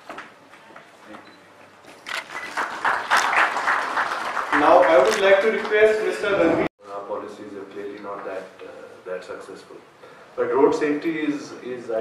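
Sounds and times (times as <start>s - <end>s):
audience applauding: 2.2s - 5.9s.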